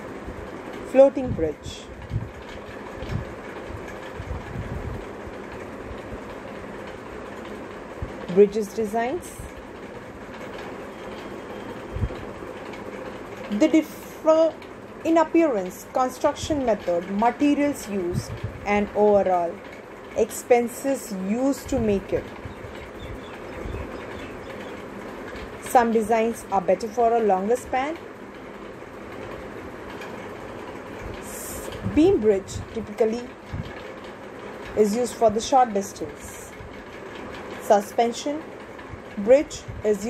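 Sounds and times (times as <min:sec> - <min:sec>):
steady background noise: 0:00.0 - 0:40.0.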